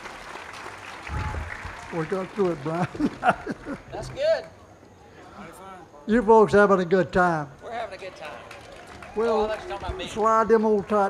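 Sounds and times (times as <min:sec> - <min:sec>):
audience applauding: 0:00.0 - 0:04.5, 0:07.6 - 0:11.0.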